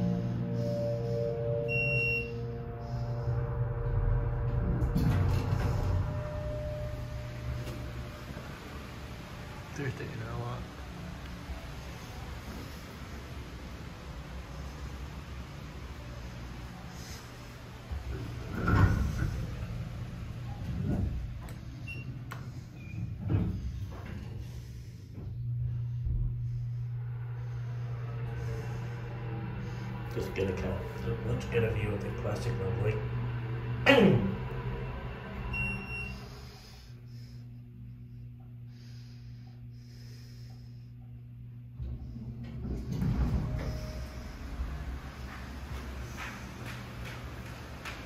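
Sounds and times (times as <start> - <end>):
soft ambient music: 0.0 - 48.0
high electronic beep: 1.3 - 2.6
elevator doors sliding open: 3.2 - 24.6, 41.8 - 48.0.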